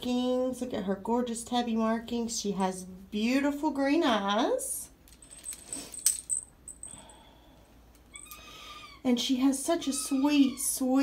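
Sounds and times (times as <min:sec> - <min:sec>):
small jingle bell jingling: 0:05.1 - 0:07.3.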